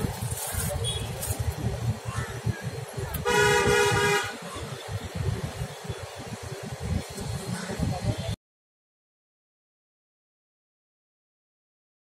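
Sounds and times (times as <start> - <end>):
vehicle horn honk: 3.2 - 4.4.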